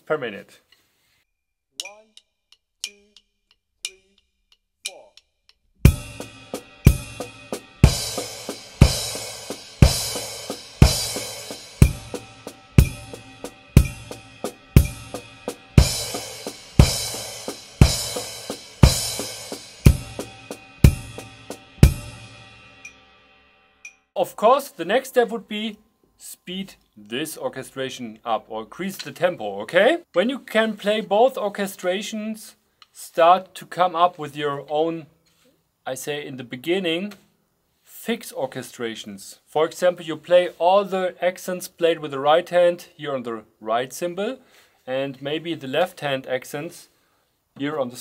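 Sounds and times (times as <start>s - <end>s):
cymbal and bass drum accents: 5.8s - 24.0s
snare drum strokes: 5.9s - 23.0s
cymbals ringing: 5.9s - 24.0s.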